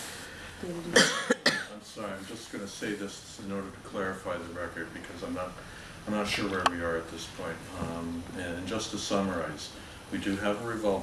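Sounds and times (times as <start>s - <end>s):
person coughing: 1.0s - 1.8s.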